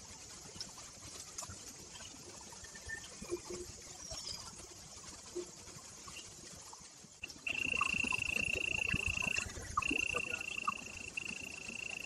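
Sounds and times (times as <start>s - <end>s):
insect high-pitched buzzing call: 7.2s - 12.0s.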